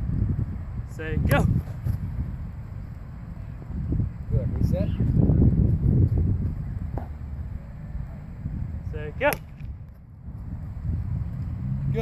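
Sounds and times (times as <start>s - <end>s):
wind rumble on microphone: 0.0s - 12.0s
sharp snap: 9.2s - 9.8s.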